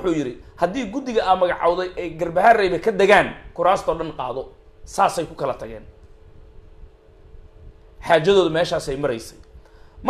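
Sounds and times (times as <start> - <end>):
faint even hum: 0.0 - 10.0.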